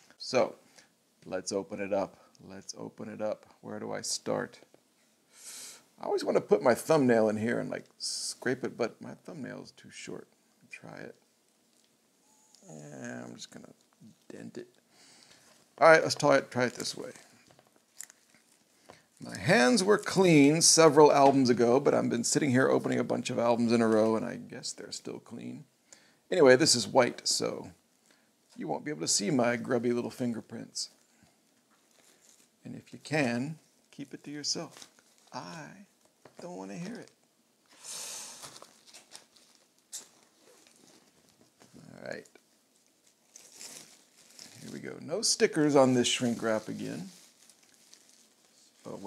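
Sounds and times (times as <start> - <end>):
plastic shrink wrap crinkling: 10.9 - 24.2, 30.9 - 49.0
small crackling clicks: 11.5 - 12.6, 16.1 - 19.0
shrink wrap tearing: 38.4 - 41.3, 42.0 - 49.0.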